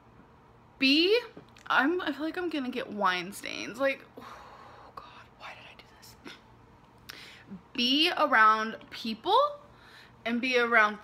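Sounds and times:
woman breathing: 4.2 - 5.0, 7.0 - 7.6, 9.7 - 10.2.

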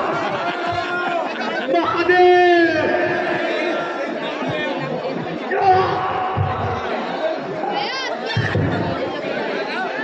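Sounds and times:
overlapping voices talking: 0.0 - 10.0.

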